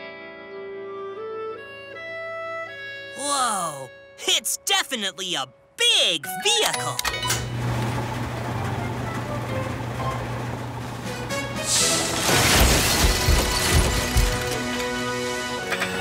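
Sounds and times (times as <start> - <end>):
light background music: 8.2 - 12.6, 13.4 - 16.0.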